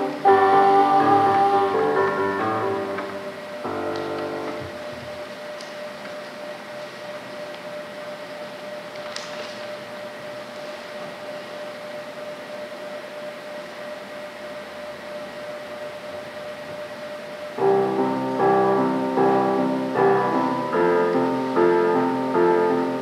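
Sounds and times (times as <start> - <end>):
digital piano chord: 0.0 - 4.9, 17.6 - 23.0
mid-pitched hum: 0.0 - 23.0
steady hiss: 0.0 - 23.0.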